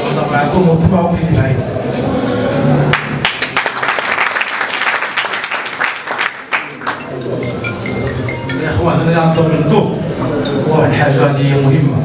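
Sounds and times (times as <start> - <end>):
audience applauding: 2.9 - 7.2.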